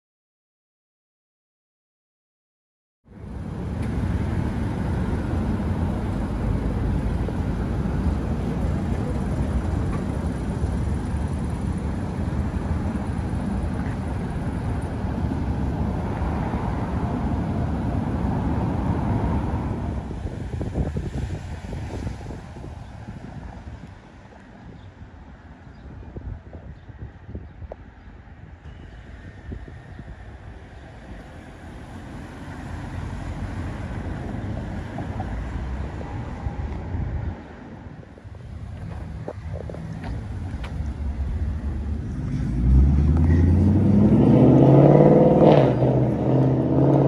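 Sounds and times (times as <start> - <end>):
car engine rumbling: 3.1 - 26.6, 28.2 - 47.0.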